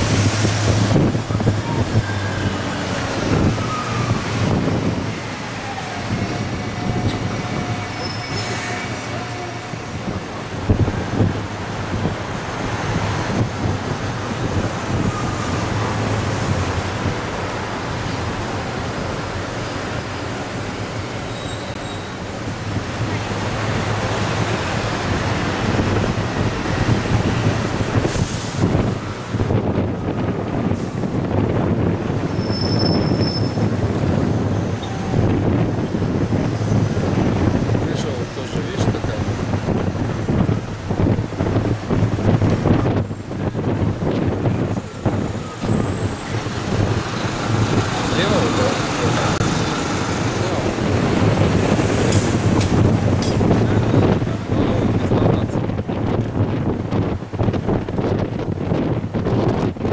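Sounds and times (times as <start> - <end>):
bus engine humming: 0.0 - 59.9
road and traffic noise: 0.0 - 59.9
high-pitched squeals: 1.6 - 9.9.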